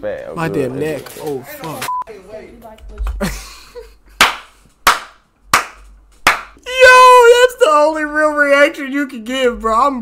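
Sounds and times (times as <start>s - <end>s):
hand claps: 4.2s - 6.6s.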